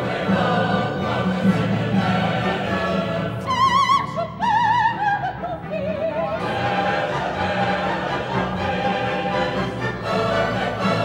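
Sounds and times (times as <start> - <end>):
opera chorus and orchestra: 0.0 - 11.0.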